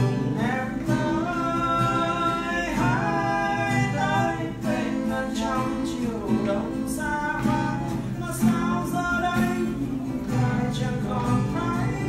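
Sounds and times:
acoustic guitar: 0:00.0 - 0:12.0
man singing pop ballad: 0:00.0 - 0:12.0.

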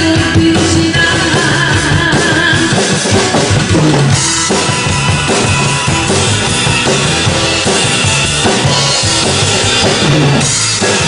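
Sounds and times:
drum kit beat: 0:00.0 - 0:11.0
song accompaniment: 0:00.0 - 0:11.0.

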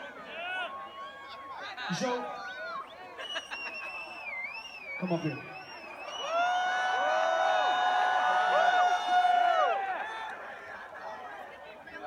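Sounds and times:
concert crowd noise: 0:00.0 - 0:12.0.

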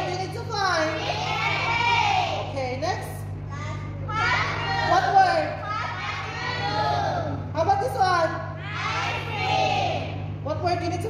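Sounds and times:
children calling out: 0:00.0 - 0:02.5, 0:03.5 - 0:07.5, 0:08.6 - 0:10.2
steady low hum: 0:00.0 - 0:11.0.

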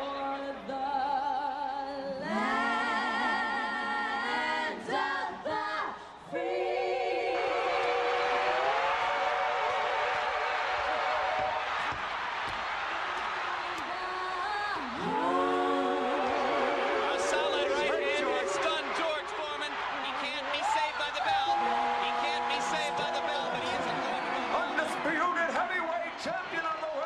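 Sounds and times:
women singing in harmony: 0:00.0 - 0:08.9, 0:13.8 - 0:18.5
arena crowd noise: 0:00.0 - 0:27.0
crowd cries and whoops: 0:07.6 - 0:27.0.

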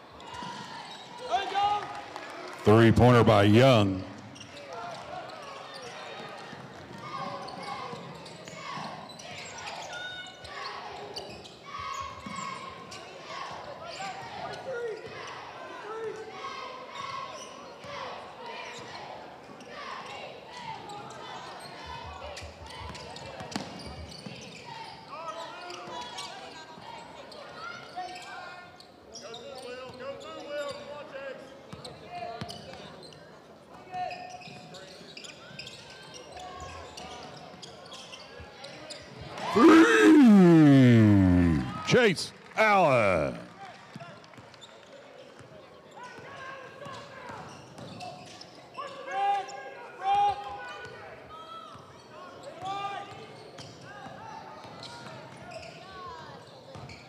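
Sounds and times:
crowd voices and shouts: 0:02.5 - 0:04.4, 0:39.5 - 0:43.6.

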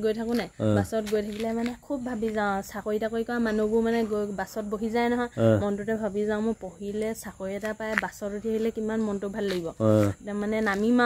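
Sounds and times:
insects droning: 0:00.0 - 0:11.0
woman talking: 0:00.0 - 0:11.0
man talking: 0:00.6 - 0:00.9, 0:05.4 - 0:05.6, 0:09.8 - 0:10.2.

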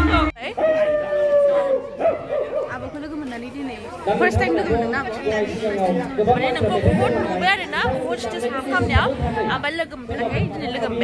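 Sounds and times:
background voices chattering: 0:00.0 - 0:11.0
women talking: 0:02.6 - 0:05.3.

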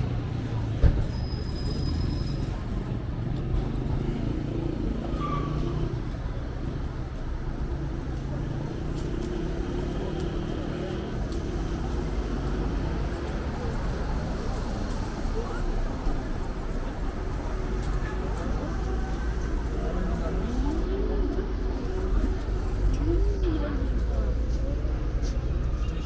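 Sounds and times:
cars passing: 0:00.0 - 0:26.0.

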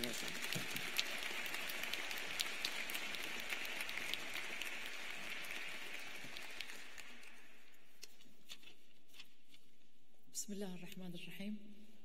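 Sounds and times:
audience applauding: 0:00.0 - 0:07.6.

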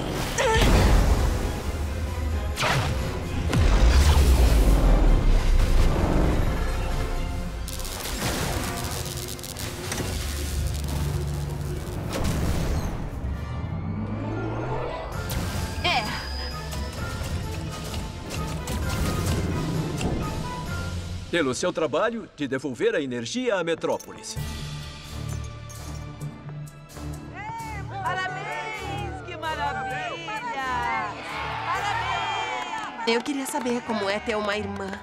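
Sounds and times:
dramatic orchestral music: 0:00.0 - 0:22.9, 0:24.2 - 0:33.0
electric crackling: 0:07.5 - 0:12.8.

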